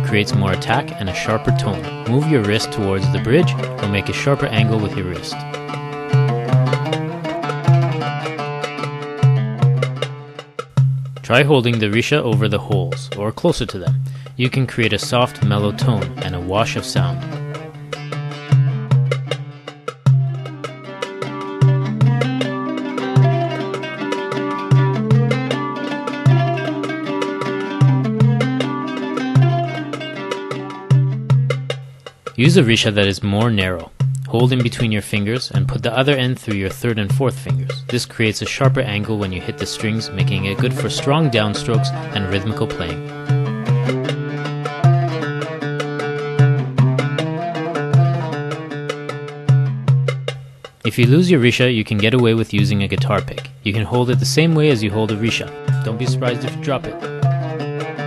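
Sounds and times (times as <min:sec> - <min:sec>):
oud playing: 0:00.0 - 0:11.6, 0:13.8 - 0:32.7, 0:35.6 - 0:50.5, 0:54.0 - 0:58.0.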